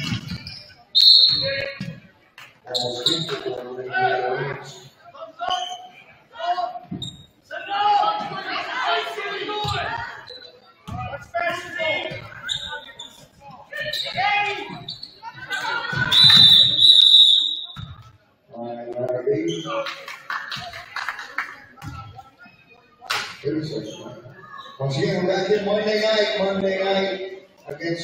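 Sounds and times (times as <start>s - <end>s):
referee's whistle blast: 1.0s - 1.7s, 16.1s - 17.8s.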